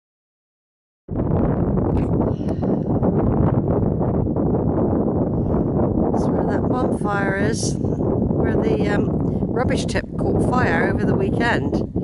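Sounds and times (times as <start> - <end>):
wind buffeting microphone: 1.1 - 12.0.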